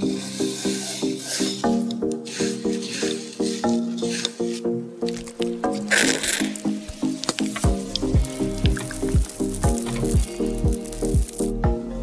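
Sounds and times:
bouncy plucked music: 1.6 - 12.0
deep bass notes: 7.5 - 12.0.

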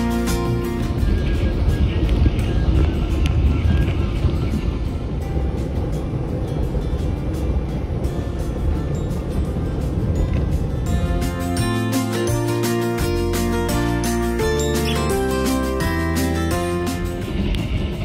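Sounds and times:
train rumbling: 0.0 - 18.0
wheels and carriage rattling: 0.0 - 18.0.

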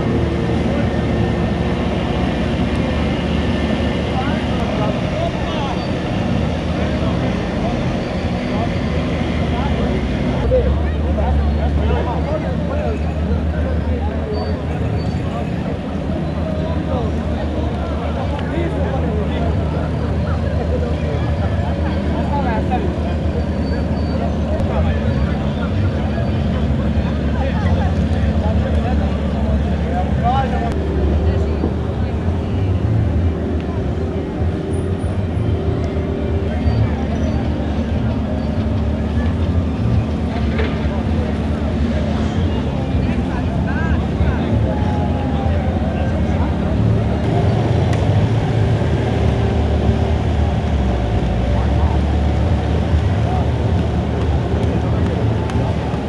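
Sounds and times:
people's voices: 0.0 - 56.0.

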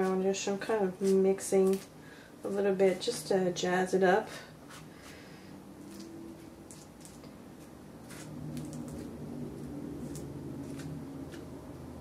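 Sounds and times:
low steady hum: 0.0 - 12.0
palette knife squishing paint: 5.8 - 11.5.

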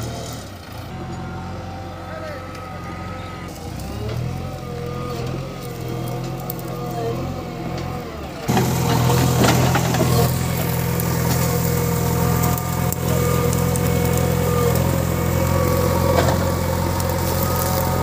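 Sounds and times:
diesel engine running: 0.0 - 18.0.

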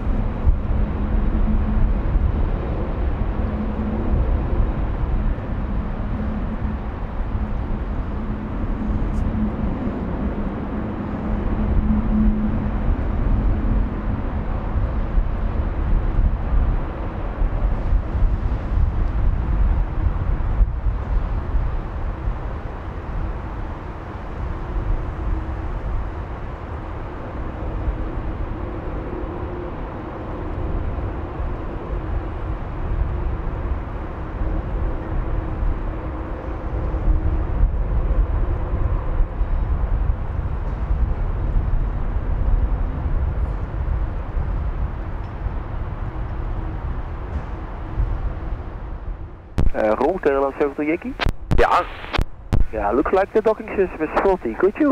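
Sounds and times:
jet airliner engines idling: 0.0 - 54.9.

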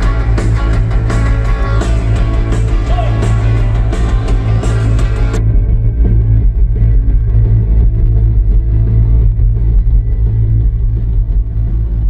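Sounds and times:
rock band playing live: 0.0 - 11.2
electric guitar: 0.0 - 12.0.

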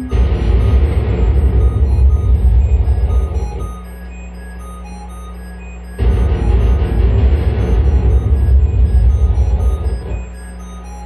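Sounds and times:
loud rumbling noise music: 0.0 - 4.2, 6.0 - 10.4
steady low hum: 0.0 - 11.0.

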